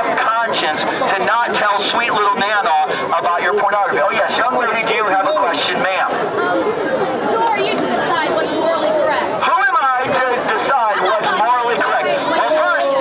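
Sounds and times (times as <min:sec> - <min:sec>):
man talking through loudspeaker: 0:00.0 - 0:06.2, 0:09.3 - 0:13.0
crowd chatter: 0:00.0 - 0:13.0.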